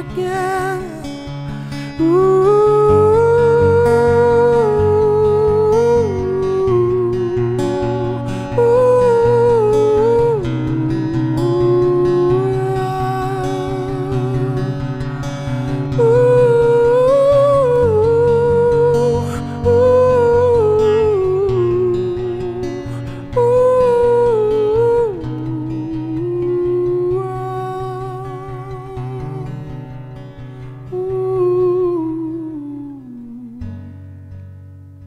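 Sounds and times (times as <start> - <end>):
acoustic guitar: 0.0 - 35.0.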